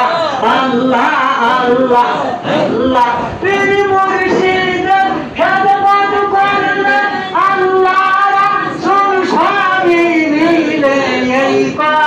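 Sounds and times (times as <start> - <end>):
high voice singing devotional song: 0.0 - 12.0.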